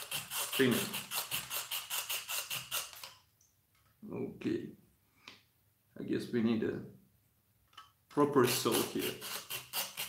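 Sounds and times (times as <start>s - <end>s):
saw cutting through resin: 0.0s - 3.0s, 8.4s - 10.0s.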